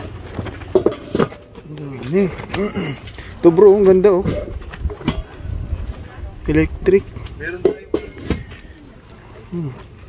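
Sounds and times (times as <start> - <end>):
voices nearby: 0.0 - 10.0.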